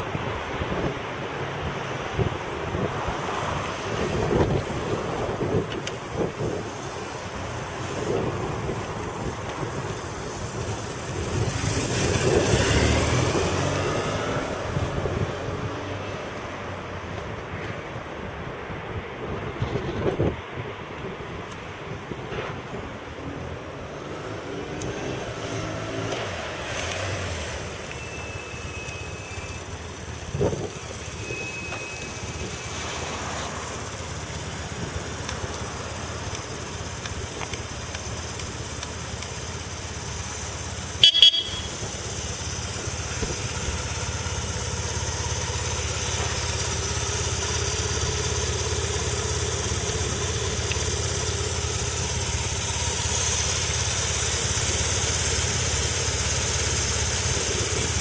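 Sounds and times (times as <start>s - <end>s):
wind on microphone: 0.0s - 7.1s, 18.3s - 23.6s
road traffic: 0.0s - 58.0s
motorcycle engine running: 3.6s - 15.4s, 26.6s - 58.0s
vehicle passing loudly: 10.8s - 16.4s.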